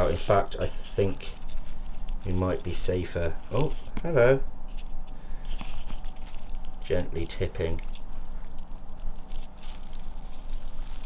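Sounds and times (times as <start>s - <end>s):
fingers scratching through soil: 0.0s - 4.1s, 4.7s - 11.0s.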